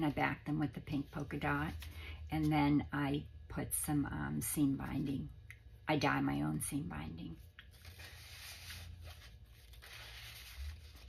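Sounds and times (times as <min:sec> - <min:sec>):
paper rustling and sliding: 0:07.7 - 0:11.0.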